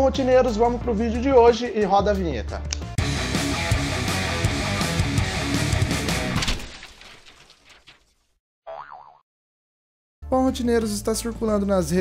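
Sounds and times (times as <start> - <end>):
heavy guitar music: 3.0 - 6.4
cartoon boing: 8.7 - 9.2.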